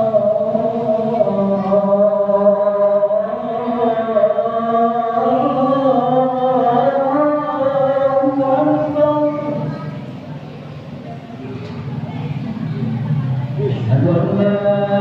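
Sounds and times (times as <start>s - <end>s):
man singing call to prayer: 0.0s - 10.0s, 13.6s - 15.0s.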